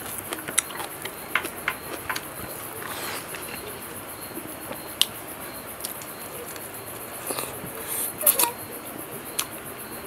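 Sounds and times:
lip smacks: 0.0 - 3.8
person chewing food: 0.0 - 5.1.

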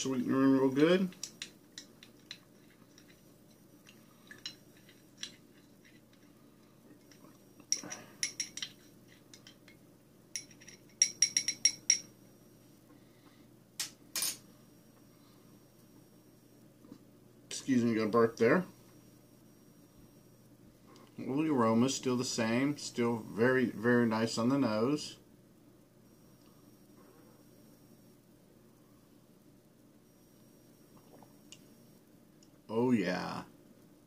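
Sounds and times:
spoon clinking against glass: 7.7 - 9.6, 10.4 - 12.1.

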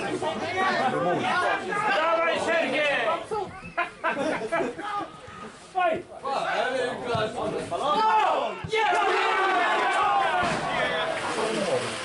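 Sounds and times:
spectators chattering: 0.0 - 12.0.

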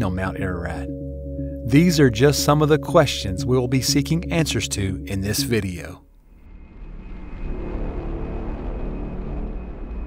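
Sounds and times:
deep rumble: 6.3 - 10.0.

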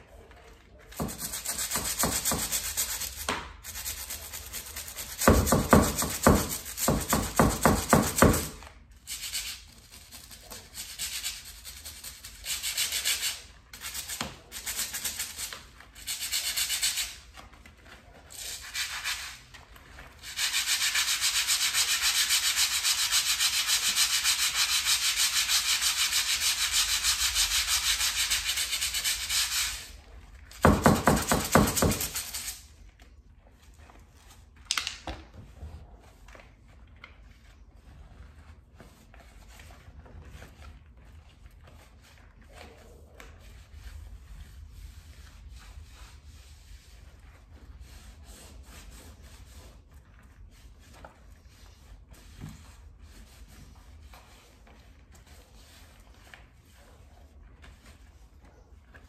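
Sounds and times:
scrub brush scrubbing baseboard: 0.0 - 34.6, 35.3 - 59.0.

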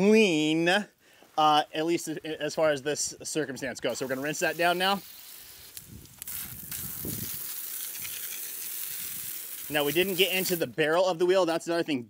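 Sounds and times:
hose spray hitting wheel: 3.9 - 10.8.

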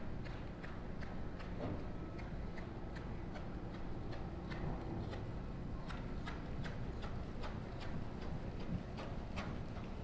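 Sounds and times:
horse hooves trotting on sand: 0.0 - 10.0.

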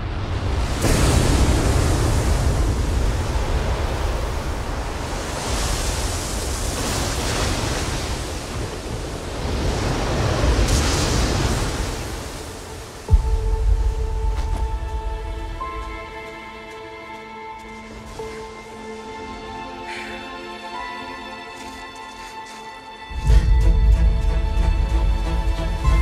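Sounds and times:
ocean waves crashing: 0.0 - 26.0.

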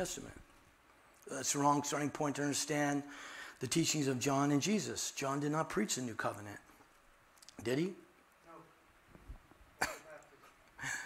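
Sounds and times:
breathy intake of breath: 3.1 - 3.6
man coughing: 9.8 - 10.2.

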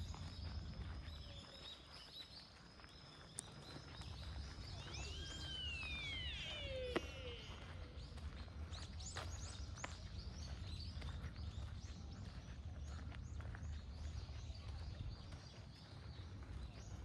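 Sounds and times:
small birds chirping: 0.0 - 17.0
falling whistled call: 4.8 - 8.0.

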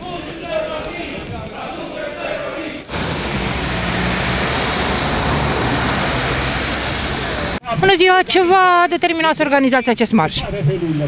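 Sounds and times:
vehicle engine humming: 2.8 - 7.7
city street traffic: 2.8 - 10.4.

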